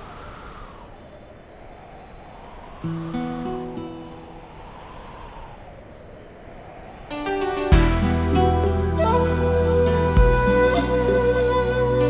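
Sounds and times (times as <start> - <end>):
soft rushing wash: 0.0 - 11.8
sustained chords: 7.2 - 12.0.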